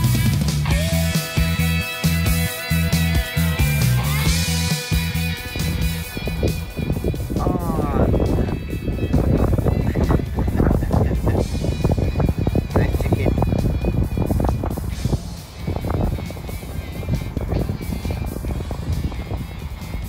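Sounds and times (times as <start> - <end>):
background music: 0.0 - 20.0
wind buffeting microphone: 0.0 - 20.0.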